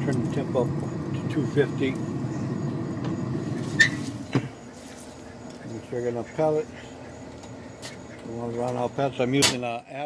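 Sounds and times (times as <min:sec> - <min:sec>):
steady low rumble: 0:00.0 - 0:04.3
metal lid clicking and thumping shut: 0:09.4 - 0:09.6.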